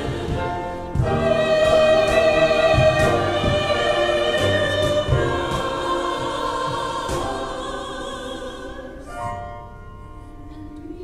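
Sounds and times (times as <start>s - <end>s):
choir singing a held chord: 0.0s - 9.7s.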